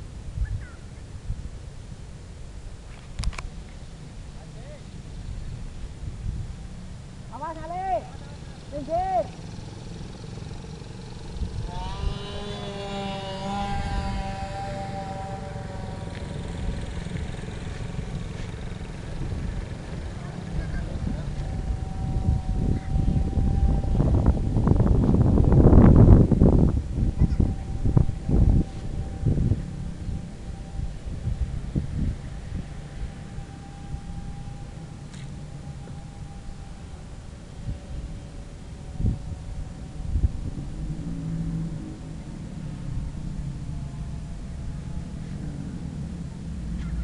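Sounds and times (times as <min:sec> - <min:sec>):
faint steady hum: 0:00.0 - 0:47.0
motor whine: 0:00.0 - 0:47.0
wind rumble on microphone: 0:00.0 - 0:47.0.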